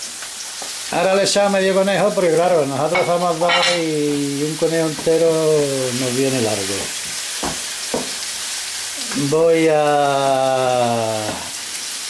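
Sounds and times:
meat and vegetables sizzling in pan: 0.0s - 12.0s
wooden spatula striking pan: 4.9s - 5.3s, 7.4s - 8.2s.

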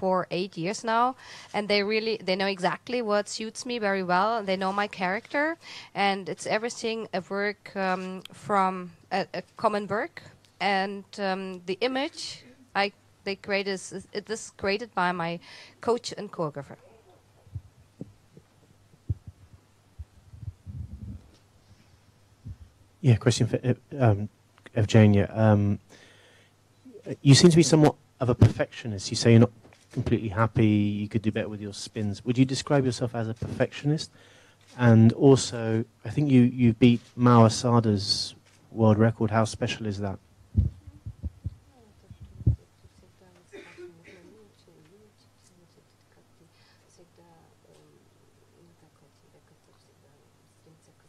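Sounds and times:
microphone being bumped: 17.4s - 21.4s, 22.4s - 22.8s, 28.4s - 28.6s, 40.5s - 43.0s
soft low thumps: 17.4s - 21.4s, 22.4s - 22.8s, 40.4s - 43.1s.

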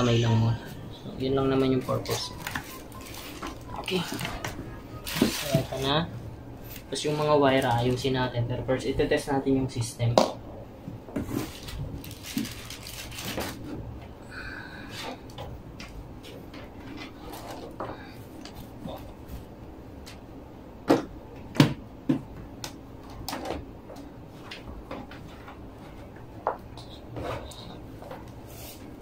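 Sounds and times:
cables clicking and rustling: 11.1s - 14.2s.

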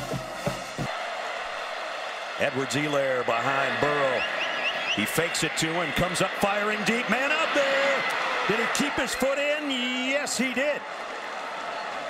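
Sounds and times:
drum hits: 0.0s - 1.0s.

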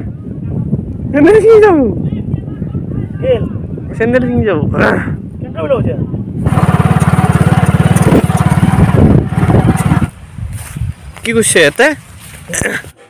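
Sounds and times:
engine running with fast beat: 6.4s - 10.2s.

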